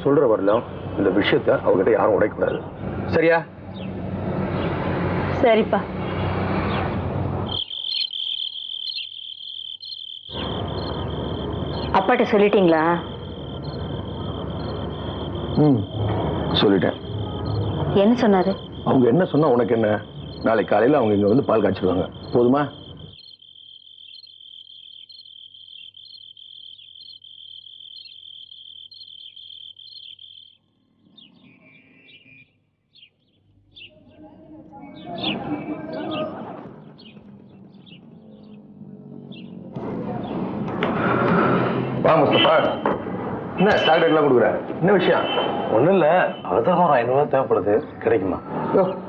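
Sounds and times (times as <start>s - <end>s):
crickets chirping: 6.2s - 32.4s, 41.4s - 49.0s.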